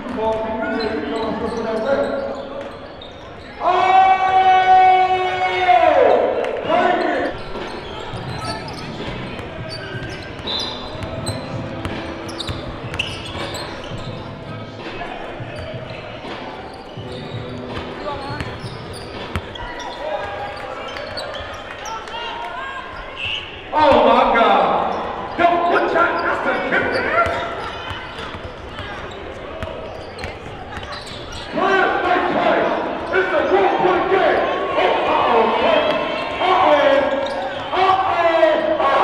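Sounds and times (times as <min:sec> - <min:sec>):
echoing crowd chatter: 0:00.0 - 0:39.0
loud held shout: 0:03.6 - 0:07.0
basketball bouncing on hardwood floor: 0:17.8 - 0:18.7.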